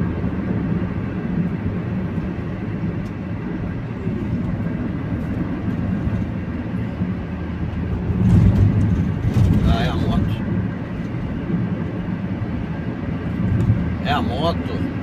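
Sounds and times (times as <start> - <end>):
van engine and tyre noise: 0.0 - 15.0.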